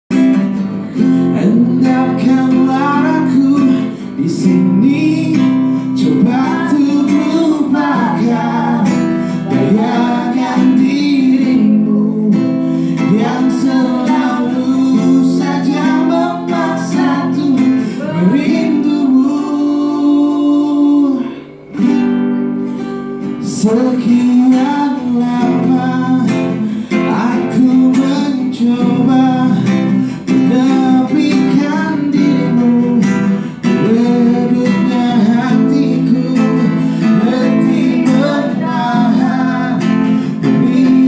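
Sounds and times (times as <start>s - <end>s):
strummed acoustic guitar: 0.1s - 41.0s
person singing into a microphone: 0.8s - 21.7s, 23.4s - 41.0s.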